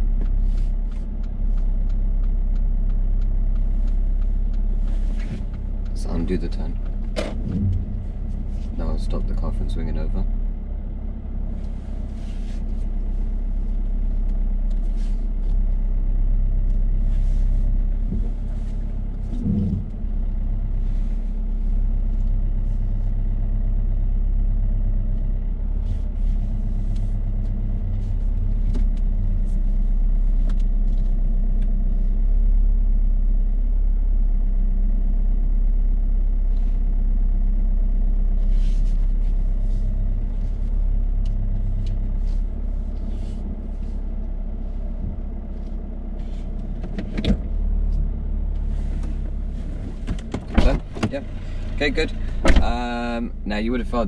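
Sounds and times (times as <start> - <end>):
car engine running at low revs: 0.0 - 54.0.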